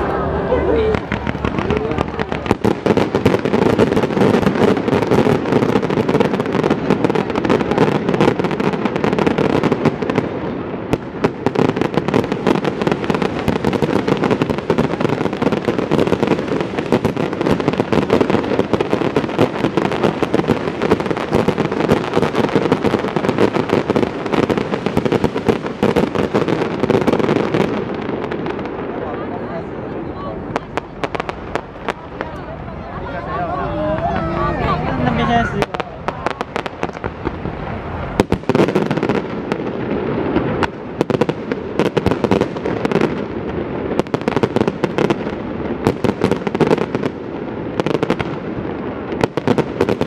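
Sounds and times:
fireworks cracks and bangs: 0.0s - 50.0s.

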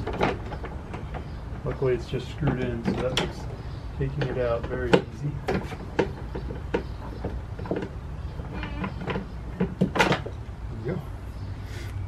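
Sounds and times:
plastic knocks and rattles: 0.0s - 10.4s.

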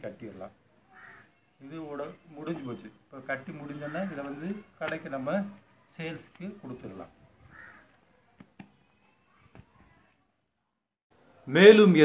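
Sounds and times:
man speaking: 1.6s - 7.2s.

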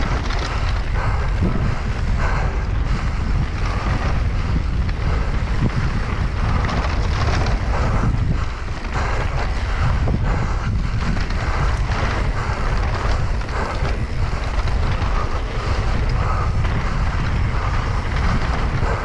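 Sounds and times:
tyres rolling on dirt trail: 0.0s - 19.0s
wind noise on microphone: 0.0s - 19.0s.

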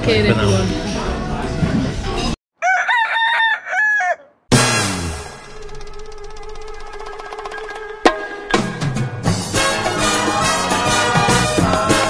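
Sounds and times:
loud crowing call: 2.6s - 4.4s.

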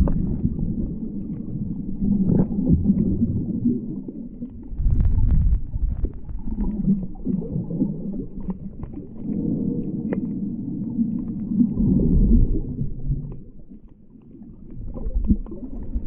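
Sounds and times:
muffled underwater water rumble: 0.0s - 16.0s.

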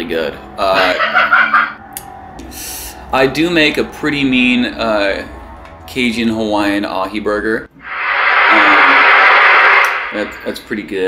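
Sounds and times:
electronic keyboard chord: 0.0s - 6.0s
burst of hiss: 7.8s - 10.9s.

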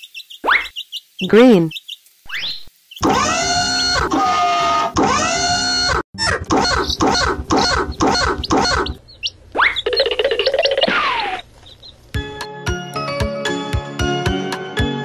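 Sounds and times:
cartoon music: 3.0s - 9.0s.

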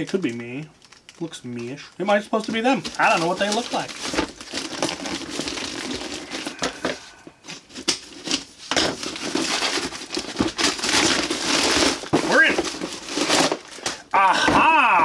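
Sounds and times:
paper crinkling and tearing: 0.0s - 14.0s.

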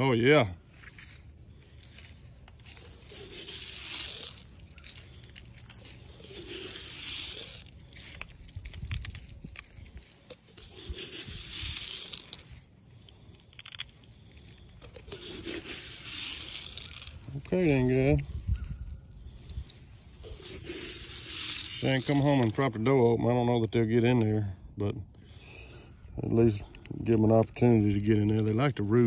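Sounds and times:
rustling and handling noise: 0.7s - 22.7s, 26.0s - 29.0s.

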